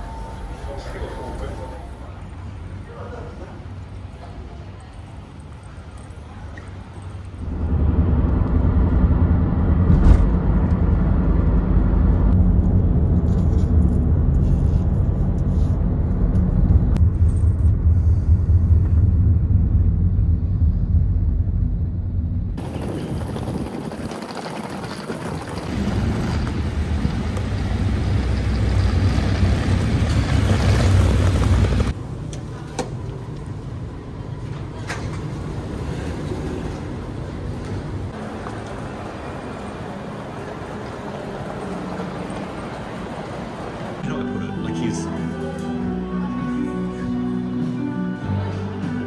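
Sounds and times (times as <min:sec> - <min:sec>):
vehicle rumble from inside: 0:07.3 - 0:23.7, 0:25.0 - 0:43.4.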